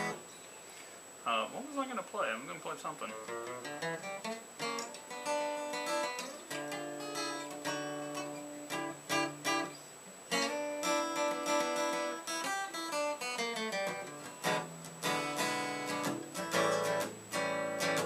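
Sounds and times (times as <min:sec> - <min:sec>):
acoustic guitar: 0:00.0 - 0:18.0.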